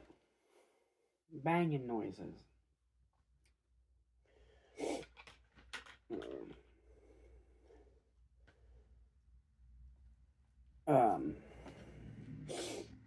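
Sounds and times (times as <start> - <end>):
faint breathing: 4.2 - 5.4, 6.6 - 9.4, 11.3 - 13.0.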